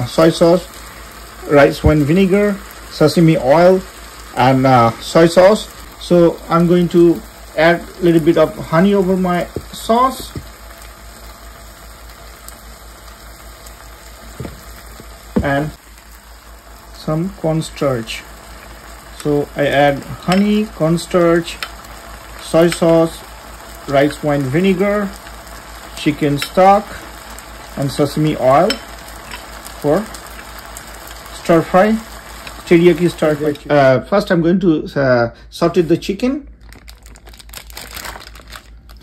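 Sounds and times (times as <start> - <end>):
background hiss: 0.0 - 36.6
soft knock: 14.4 - 14.7.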